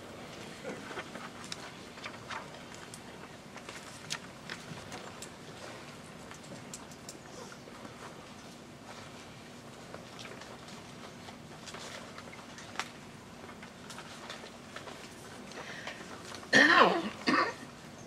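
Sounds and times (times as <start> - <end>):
faint clicks and rustles: 0.0 - 18.0.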